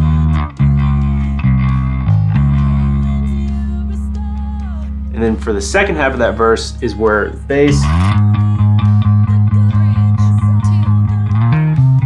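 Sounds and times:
electric bass guitar notes: 0.0s - 12.0s.

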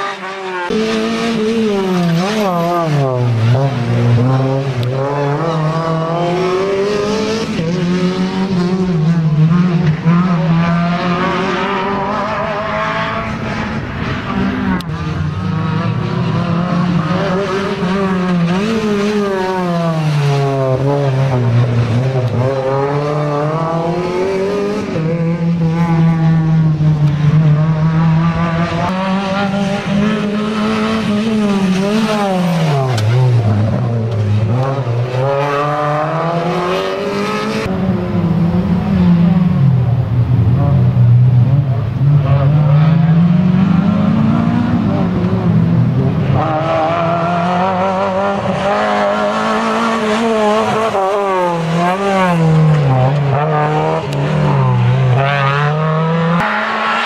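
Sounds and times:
race car engines revving: 0.0s - 57.0s.

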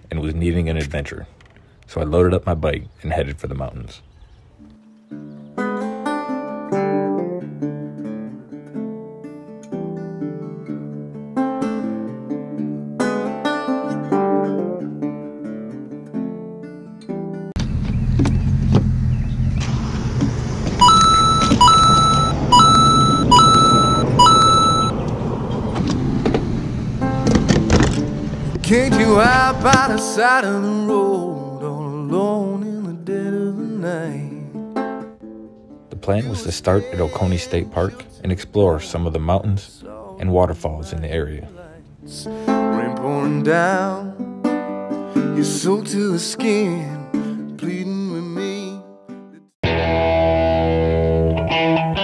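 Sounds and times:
plucked guitar music: 4.6s - 17.6s, 27.0s - 52.0s
car driving on road rumble: 17.6s - 29.7s
electronic beeps: 20.8s - 25.0s.

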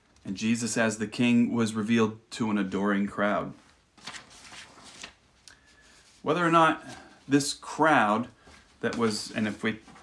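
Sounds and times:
paper pages rustling: 3.6s - 7.2s, 8.4s - 10.0s.

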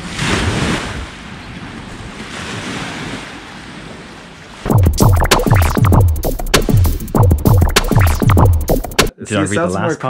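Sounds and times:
electronic music with drum machine: 4.7s - 9.1s.

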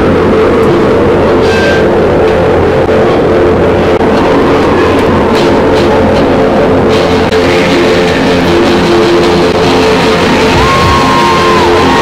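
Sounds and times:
distorted guitar chord: 0.0s - 12.0s
drumming: 7.4s - 12.0s.

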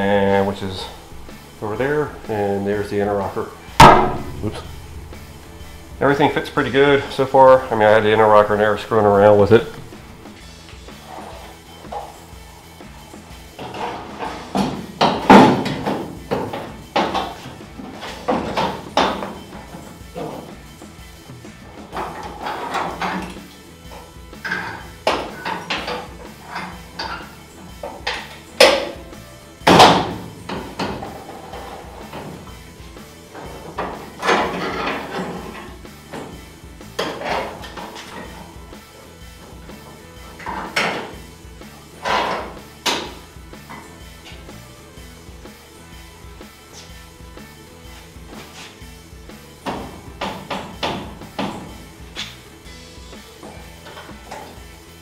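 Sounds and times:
rock music: 0.0s - 55.0s
sheet metal knocks and clanks: 0.3s - 10.4s, 13.6s - 17.5s, 49.6s - 51.8s.

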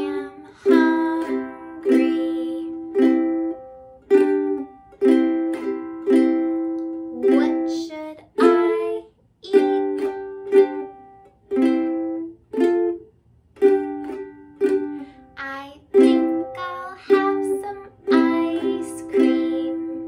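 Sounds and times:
ukulele strumming chords: 0.0s - 20.0s.

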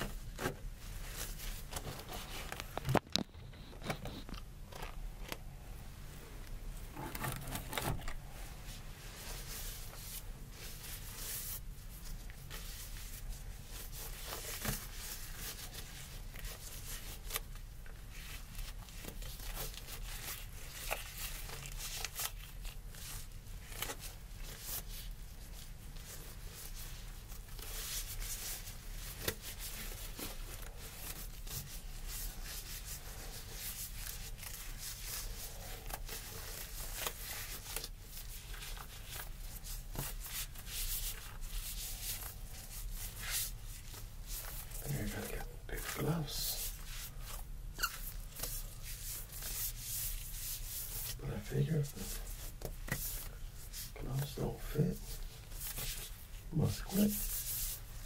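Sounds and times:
disposable glove crinkling: 0.0s - 58.0s.

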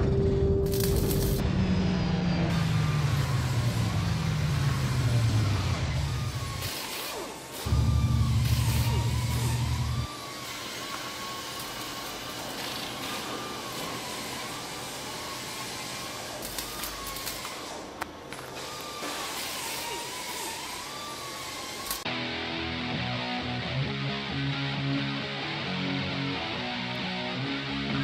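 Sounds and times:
car engine revving: 1.4s - 6.6s, 7.7s - 10.1s.

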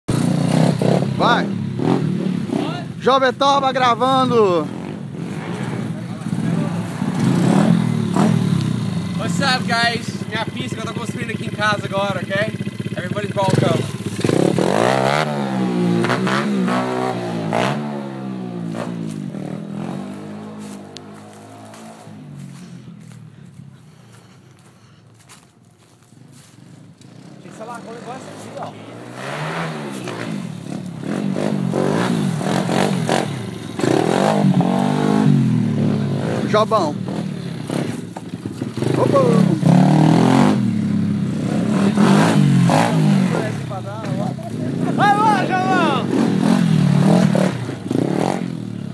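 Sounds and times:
motorbike engine revving: 0.1s - 23.4s, 26.1s - 48.9s
small motorbike engine running: 6.5s - 15.4s.

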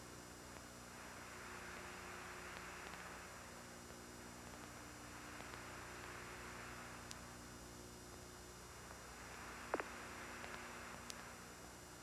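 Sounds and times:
faint steady hiss: 0.0s - 12.0s
low mains hum: 0.0s - 12.0s
small clicks: 2.5s - 3.1s, 5.3s - 5.7s, 9.7s - 11.3s.

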